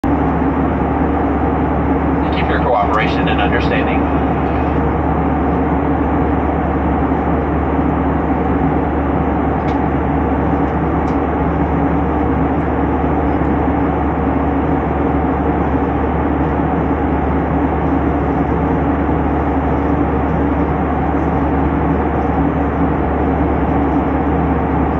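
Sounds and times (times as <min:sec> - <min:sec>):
airliner cabin drone: 0:00.0 - 0:24.9.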